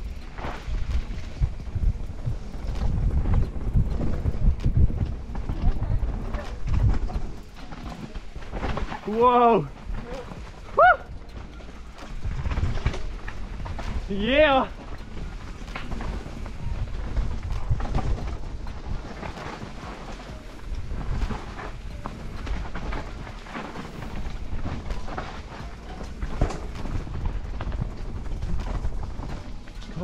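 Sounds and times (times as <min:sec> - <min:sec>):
bike clicks and rattles: 0:00.0 - 0:30.0
wind rumble on microphone: 0:00.0 - 0:30.0.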